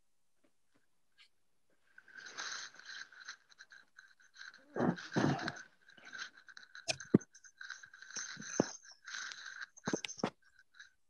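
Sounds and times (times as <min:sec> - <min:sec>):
crackling and crunching on microphone: 0:01.2 - 0:11.0.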